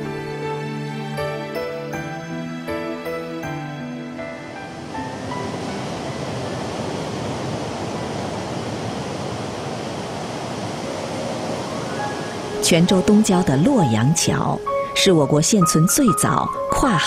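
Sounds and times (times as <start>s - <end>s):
soft background music: 0.0s - 9.2s, 10.0s - 17.0s
sea waves washing: 0.0s - 17.0s.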